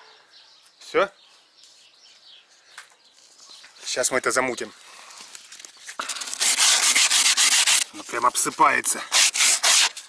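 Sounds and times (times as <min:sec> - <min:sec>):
sandpaper rubbing on wood: 0:06.0 - 0:10.0.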